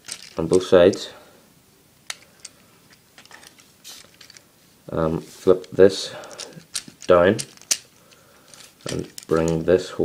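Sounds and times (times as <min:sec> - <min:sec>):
plastic toy parts clicking: 0:00.0 - 0:00.5, 0:05.6 - 0:09.6.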